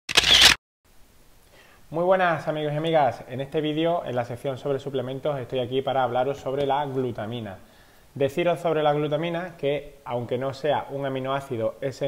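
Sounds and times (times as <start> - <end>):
man speaking: 1.9 - 12.0.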